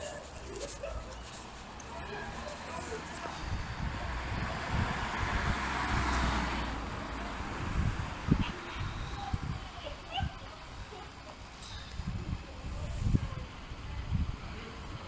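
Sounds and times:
car passing: 1.8s - 9.6s.

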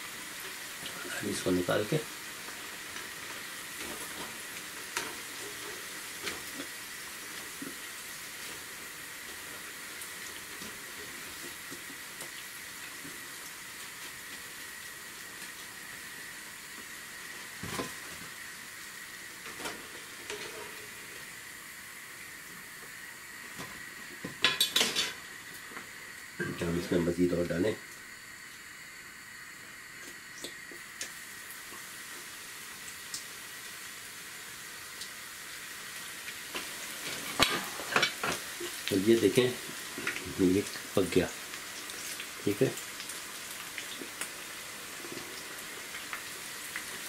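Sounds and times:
deep-frying sizzle in oil: 0.0s - 47.0s.

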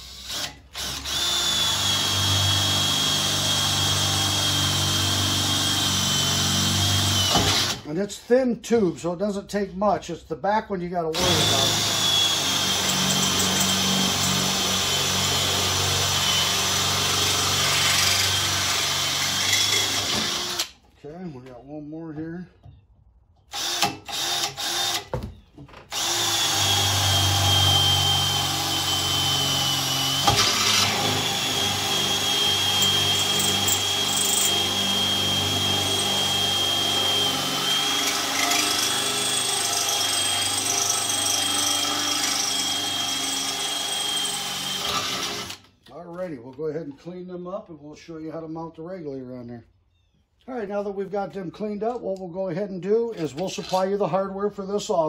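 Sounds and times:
cordless drill whining: 0.0s - 7.9s, 11.2s - 20.9s, 23.4s - 45.8s.

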